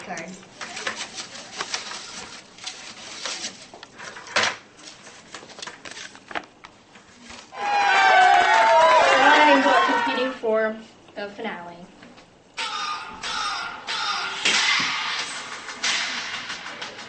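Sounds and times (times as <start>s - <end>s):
paper rustling and crinkling: 0.4s - 7.5s
sharp knock: 13.2s - 17.0s.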